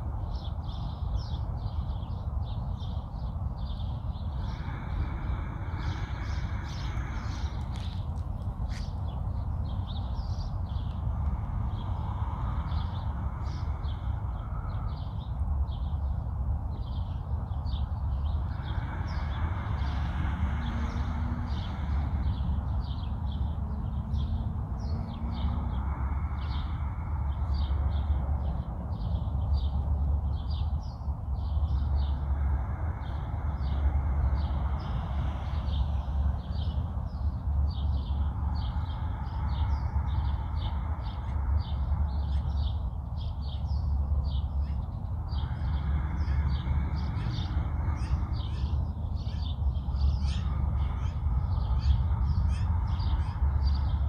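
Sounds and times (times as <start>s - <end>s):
small birds chirping: 0.0s - 54.0s
wind rumble on microphone: 0.0s - 54.0s.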